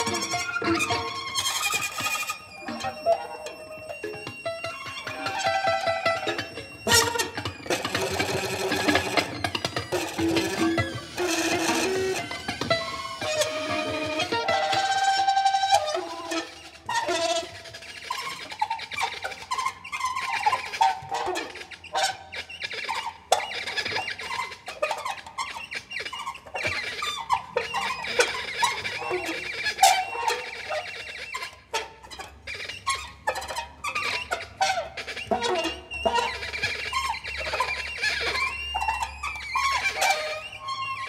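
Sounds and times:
violin: 0.0 - 41.0.

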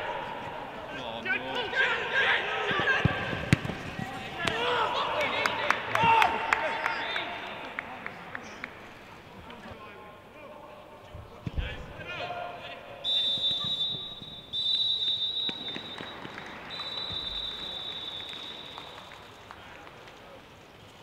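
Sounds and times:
players shouting: 0.0 - 7.4
referee's whistle blasts: 13.0 - 19.1.

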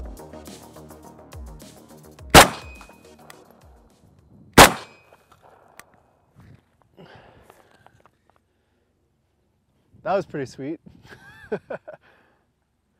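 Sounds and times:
background music with a beat: 0.0 - 4.0
rifle shots with echo: 2.3 - 2.9, 4.6 - 5.7.

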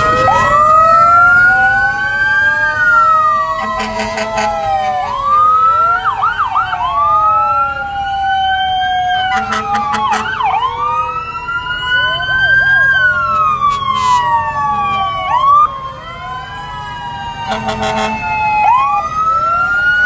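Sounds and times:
fire truck sirens wailing: 0.0 - 20.0.

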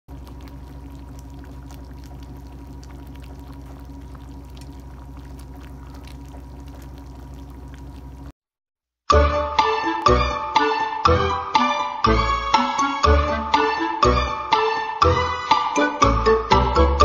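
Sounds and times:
sauce bubbling and popping: 0.1 - 8.3
steady low hum: 0.1 - 8.3.

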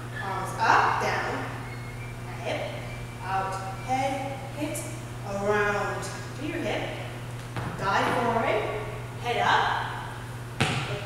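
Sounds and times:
steady low hum: 0.0 - 11.0
woman calling out: 0.2 - 1.6, 2.3 - 6.9.

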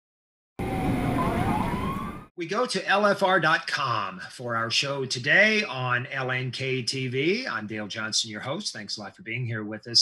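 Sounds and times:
siren wailing: 0.6 - 2.3.

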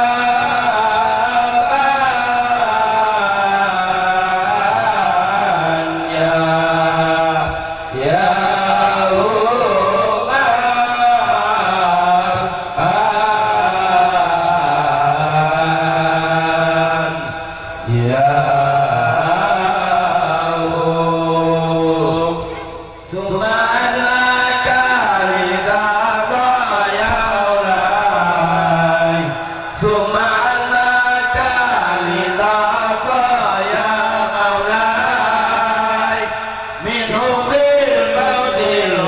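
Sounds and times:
men chanting through microphones: 0.0 - 39.0.

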